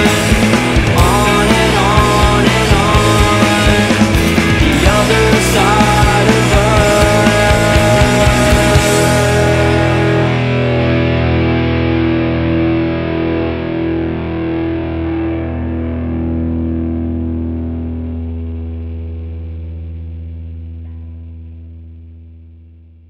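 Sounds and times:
distorted electric guitar chord: 0:00.0 - 0:22.8.

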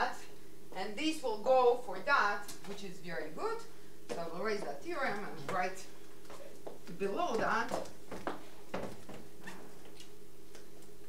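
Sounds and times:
steady room hum: 0:00.0 - 0:11.0.

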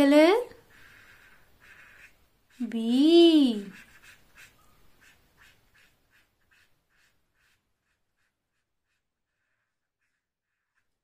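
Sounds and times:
marker scratching on paper: 0:00.6 - 0:11.0.

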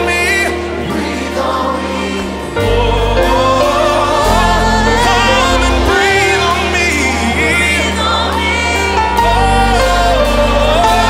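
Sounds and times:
band with sustained bass: 0:00.0 - 0:11.0
choir and congregation singing: 0:00.0 - 0:11.0.

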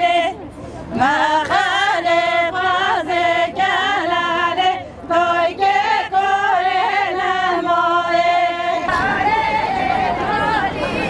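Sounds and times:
crowd talking and calling: 0:00.0 - 0:11.0
outdoor background noise: 0:00.0 - 0:11.0
women singing slow melody: 0:00.0 - 0:11.0.

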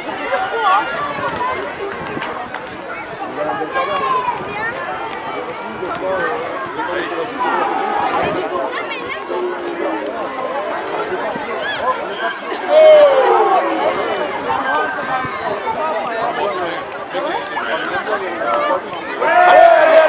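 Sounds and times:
voices calling out and chattering: 0:00.0 - 0:20.0.

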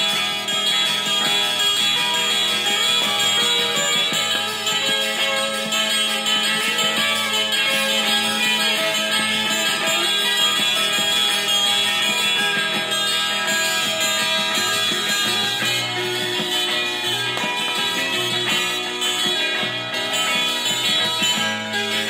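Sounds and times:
folk song from vinyl record: 0:00.0 - 0:22.0.

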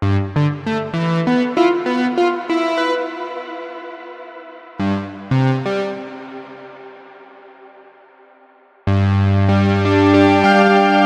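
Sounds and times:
synthesizer chords with reverb: 0:00.0 - 0:11.0.

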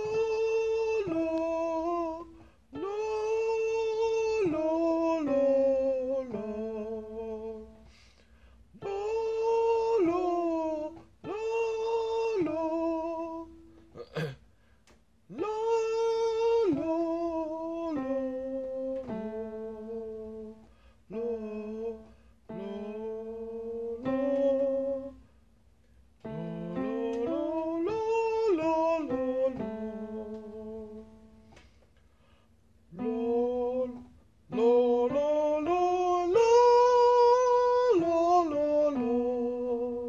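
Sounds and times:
person singing vocal scales: 0:00.0 - 0:08.0, 0:08.8 - 0:14.4, 0:15.3 - 0:25.2, 0:26.3 - 0:31.6, 0:32.9 - 0:40.0.

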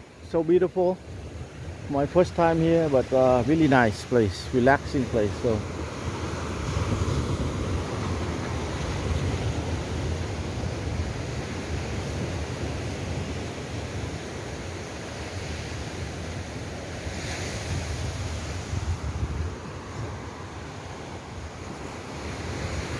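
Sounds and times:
wind buffeting microphone: 0:05.4 - 0:14.4, 0:17.6 - 0:22.9.

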